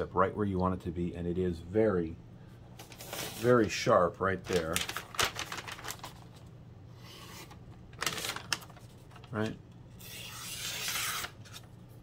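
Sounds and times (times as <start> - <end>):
paper rustling: 2.8 - 3.8, 4.4 - 6.4, 7.3 - 12.0.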